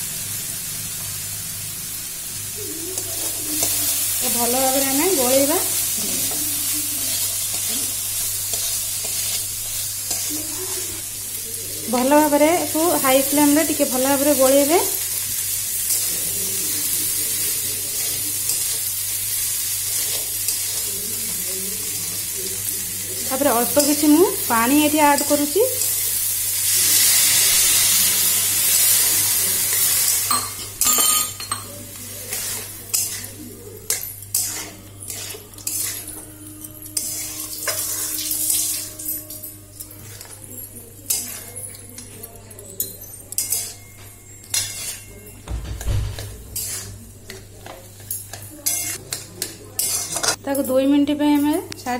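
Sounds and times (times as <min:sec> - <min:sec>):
food sizzling in hot oil: 0:00.0 - 0:42.1, 0:44.5 - 0:50.4
spatula stirring: 0:02.8 - 0:18.9, 0:29.7 - 0:45.3, 0:46.2 - 0:50.4
metal spatula scraping a pan: 0:32.2 - 0:40.4, 0:44.4 - 0:45.2, 0:46.2 - 0:49.2, 0:49.8 - 0:50.4.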